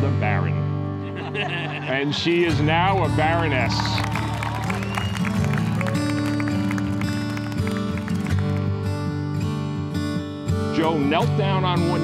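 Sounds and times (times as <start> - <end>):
slow song with plucked notes: 0.0 - 12.0.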